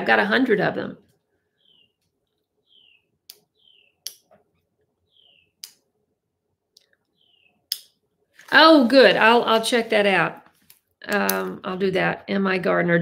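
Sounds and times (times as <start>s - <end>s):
small bird chirping: 1.5s - 4.3s, 5.0s - 5.8s, 6.8s - 9.9s.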